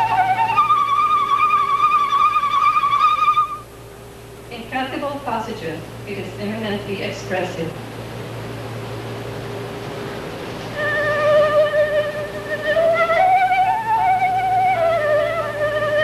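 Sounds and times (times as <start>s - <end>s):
flute melody with vibrato: 0.0s - 3.7s, 10.7s - 16.0s
steady low hum: 0.0s - 16.0s.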